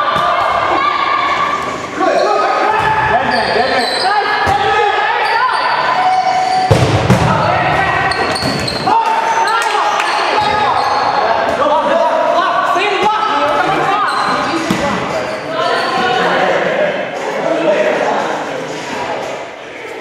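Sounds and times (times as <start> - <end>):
players shouting in echoing hall: 0.0 - 20.0.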